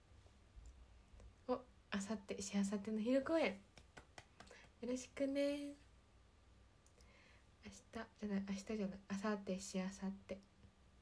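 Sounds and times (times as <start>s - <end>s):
woman's voice: 1.5s - 3.7s, 4.7s - 5.9s, 7.6s - 10.5s.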